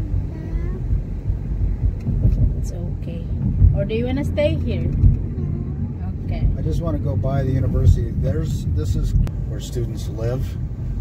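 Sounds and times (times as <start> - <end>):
road and engine noise in car: 0.0 - 11.0.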